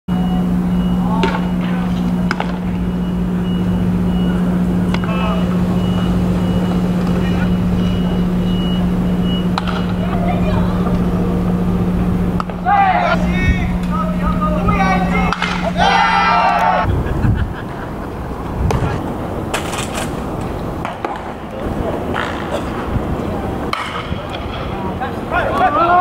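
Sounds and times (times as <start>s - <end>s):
high beep: 0.1s - 2.1s, 2.8s - 10.1s
steady low hum: 0.1s - 25.8s
players shouting: 4.1s - 16.9s, 21.5s - 26.0s.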